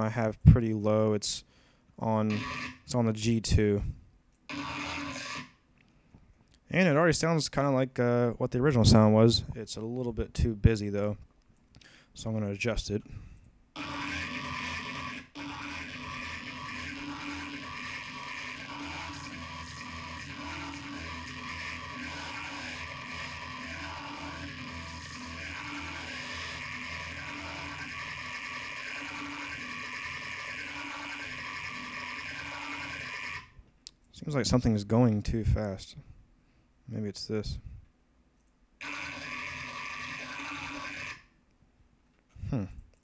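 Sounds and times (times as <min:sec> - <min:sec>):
wobbling growl bass synth: 0:13.8 - 0:33.4.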